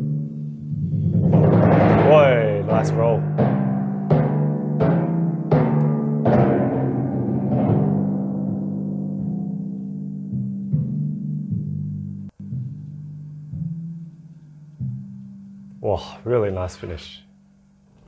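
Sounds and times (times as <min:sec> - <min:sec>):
timpani struck with felt mallets: 0:00.0 - 0:15.8.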